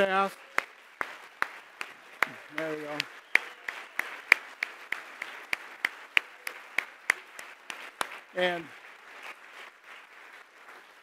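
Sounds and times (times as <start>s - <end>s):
audience applause: 0.0s - 11.0s
hand claps close to microphone: 0.0s - 11.0s.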